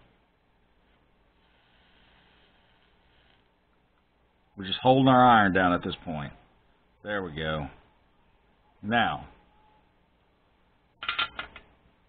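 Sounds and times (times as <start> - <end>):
clatter of hard clicks: 11.0 - 11.7.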